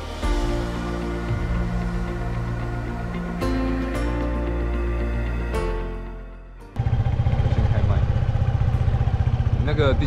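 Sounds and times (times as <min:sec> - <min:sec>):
background music: 0:00.0 - 0:06.8
motor scooter engine running: 0:06.8 - 0:10.0.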